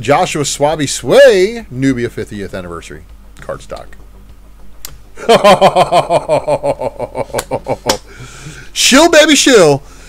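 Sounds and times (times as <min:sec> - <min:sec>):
man laughing hard: 0:05.2 - 0:08.5.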